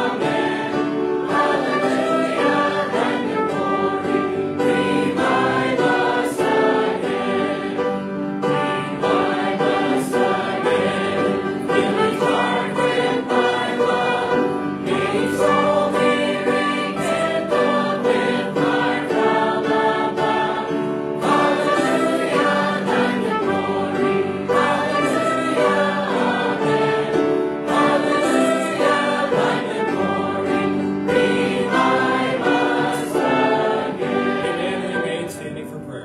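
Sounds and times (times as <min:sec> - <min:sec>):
choir and congregation singing hymn: 0:00.0 - 0:35.5.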